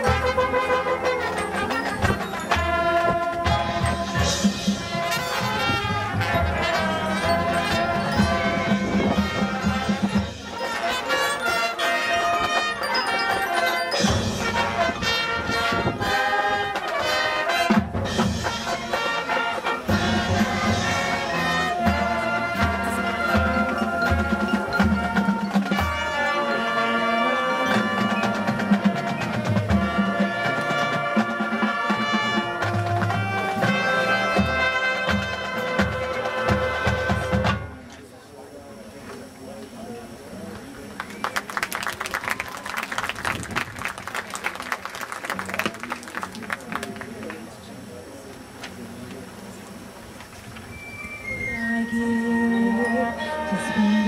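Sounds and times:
drums and percussion: 0.0 - 37.9, 41.0 - 47.2
marching band brass: 0.0 - 37.9, 41.0 - 47.5, 49.8 - 54.0.

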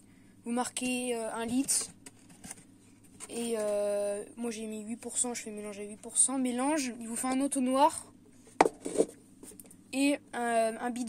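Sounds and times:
funnel knocking on workbench: 8.6 - 8.8.

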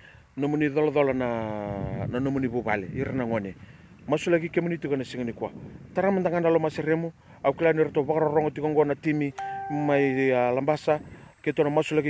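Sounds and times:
man speaking: 7.5 - 12.0
short chime tone: 9.3 - 10.4.

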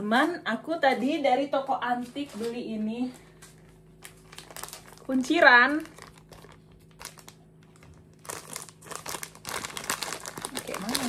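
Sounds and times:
plastic bag crinkling: 2.2 - 11.0.

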